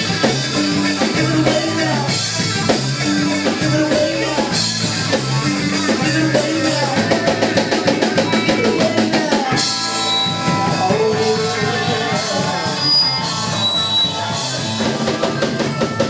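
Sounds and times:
drum roll: 0.0 - 16.0
live band playing: 0.0 - 16.0
cymbals: 9.5 - 16.0.

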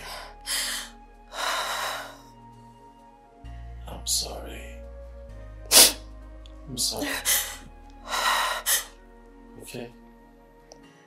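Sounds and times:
person gasping: 0.0 - 2.2, 7.0 - 9.0
soft background music: 0.0 - 11.0.

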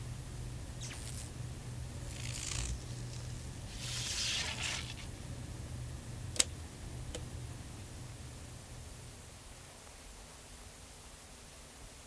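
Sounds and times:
low electrical hum: 0.0 - 12.0
static hiss: 2.0 - 5.2.

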